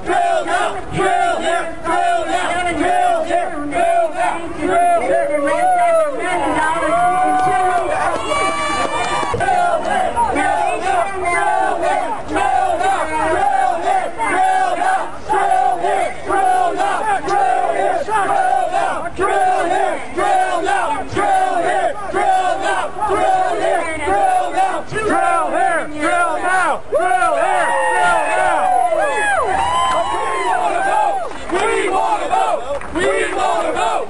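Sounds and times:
crowd shouting a chant: 0.0 - 34.0.

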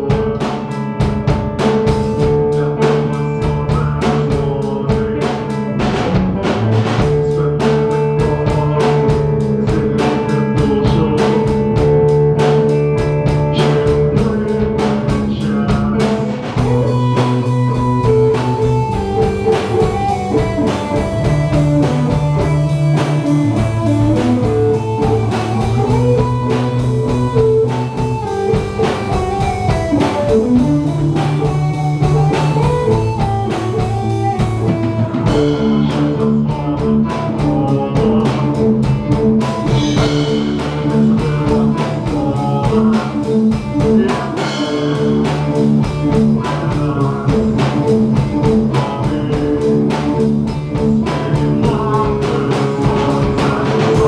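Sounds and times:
drum kit beat: 0.0 - 54.0
electric guitar melody: 0.0 - 54.0.

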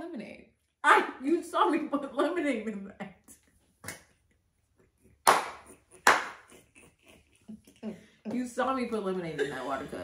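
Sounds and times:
loud hand claps: 5.2 - 6.6.

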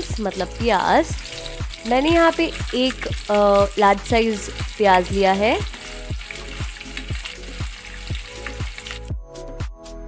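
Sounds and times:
onions sizzling in hot oil: 0.0 - 9.1
background music with steady beat: 0.0 - 10.0.

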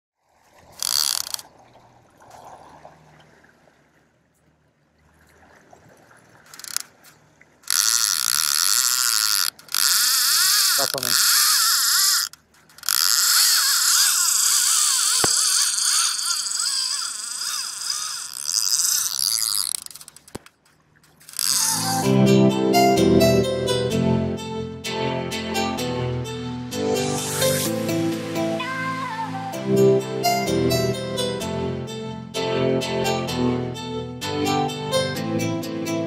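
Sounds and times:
fishing reel ratchet buzzing: 0.8 - 1.4, 6.5 - 6.9, 7.6 - 22.1
sharp click: 7.7 - 16.8, 18.7 - 22.0.

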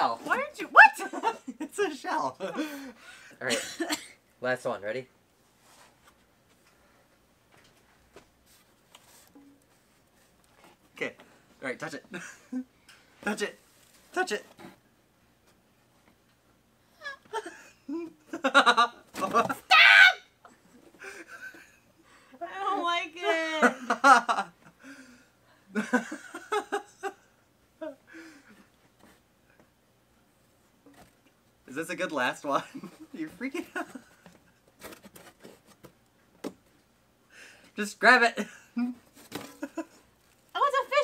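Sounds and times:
squeals and exclamations: 19.7 - 20.4.

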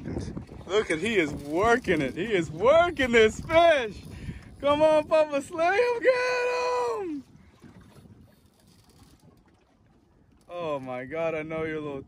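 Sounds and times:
faint wind: 0.0 - 12.0
sea noise: 0.0 - 12.0.

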